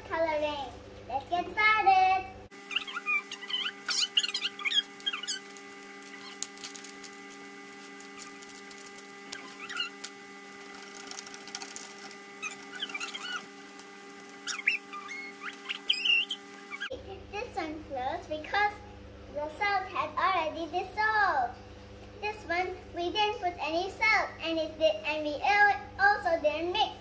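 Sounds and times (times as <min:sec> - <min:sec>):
steady background hum: 0:00.0 - 0:27.0.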